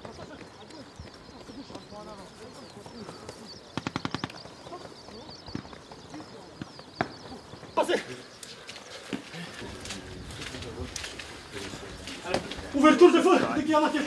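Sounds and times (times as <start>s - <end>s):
birds chirping: 0.0s - 14.0s
distant automatic rifle fire: 3.7s - 7.8s.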